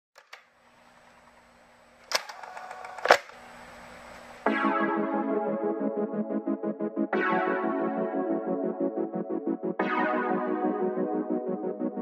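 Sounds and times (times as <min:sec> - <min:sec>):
cassette player mechanical clicks: 0:00.2 - 0:00.5, 0:02.1 - 0:03.4.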